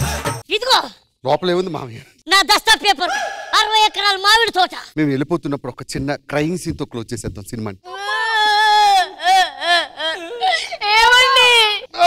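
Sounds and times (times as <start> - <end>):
person wailing and sobbing: 7.9 - 12.0.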